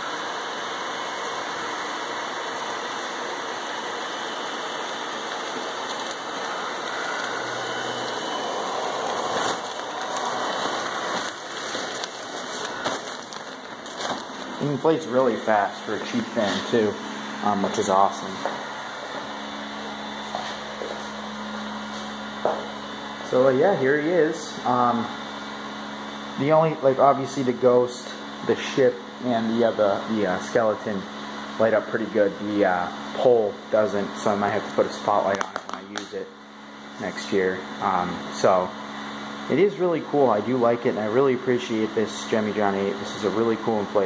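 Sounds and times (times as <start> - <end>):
small blower fan running: 0.0 - 44.0
nylon fabric rustling and crinkling: 8.0 - 15.0.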